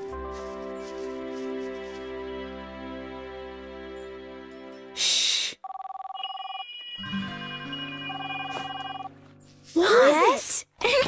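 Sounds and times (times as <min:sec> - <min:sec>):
cell phone ringtone: 0:05.6 - 0:09.2.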